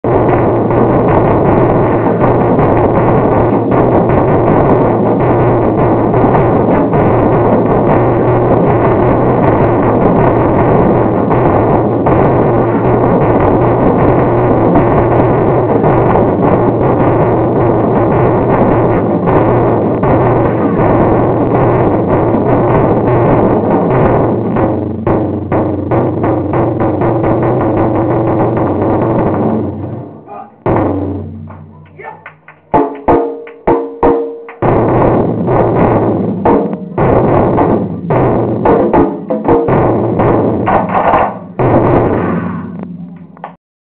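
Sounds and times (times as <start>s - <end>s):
taiko drumming: 0.1s - 43.6s.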